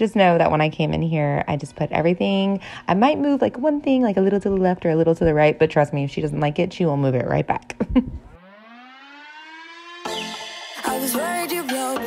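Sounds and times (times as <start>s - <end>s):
rising siren-like tone: 8.2s - 11.5s
background music: 8.4s - 12.0s.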